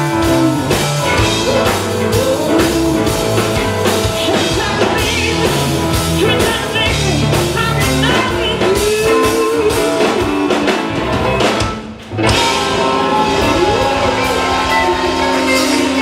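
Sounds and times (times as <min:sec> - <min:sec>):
blues rock band playing: 0:00.0 - 0:16.0
woman singing: 0:00.1 - 0:10.7.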